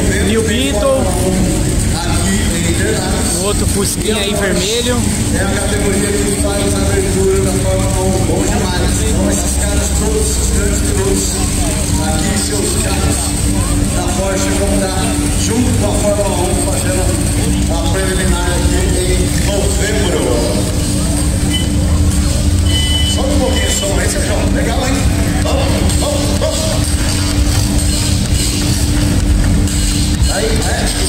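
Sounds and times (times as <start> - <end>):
background music: 0.0 - 31.0
cars rolling slowly past: 0.0 - 31.0
indistinct voices: 0.0 - 31.0.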